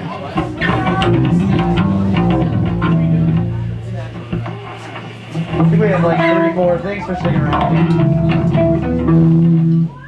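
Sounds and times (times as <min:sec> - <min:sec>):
electric bass notes: 0:00.3 - 0:10.0
picked electric guitar notes: 0:00.4 - 0:04.6, 0:05.3 - 0:10.0.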